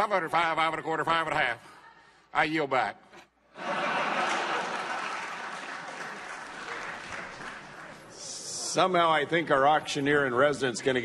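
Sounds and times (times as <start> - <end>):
audience applause: 3.7 - 8.2.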